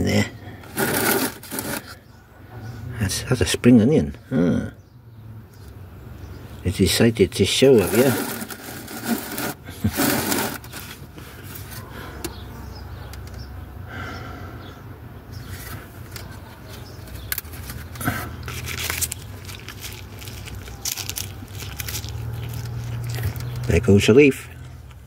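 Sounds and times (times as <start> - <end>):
plants and pots rustling: 0.0 - 2.1, 6.7 - 12.4, 15.3 - 25.0.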